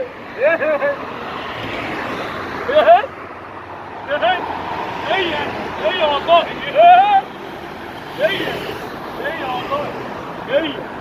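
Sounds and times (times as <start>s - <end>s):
man exclaiming: 0.0s - 1.1s, 2.7s - 3.2s, 4.1s - 7.3s
car passing: 0.0s - 11.0s.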